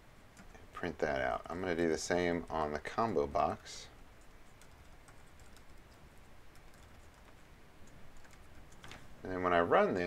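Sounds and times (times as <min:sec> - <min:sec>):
faint keyboard typing: 0:00.3 - 0:00.9, 0:02.4 - 0:09.2.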